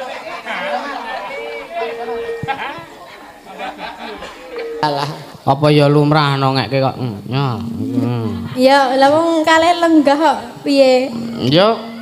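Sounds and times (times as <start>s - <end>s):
people chattering: 0.0s - 12.0s
steady held tone: 4.2s - 5.4s, 7.3s - 8.6s, 10.8s - 12.0s.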